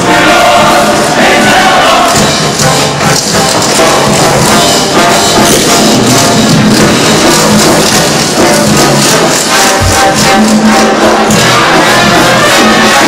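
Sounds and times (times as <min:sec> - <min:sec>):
upbeat show tune band: 0:00.0 - 0:13.0.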